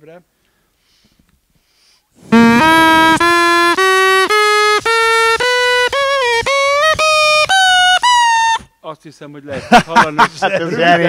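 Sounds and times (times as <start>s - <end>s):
straw reed pipe rising notes: 2.3s - 8.7s.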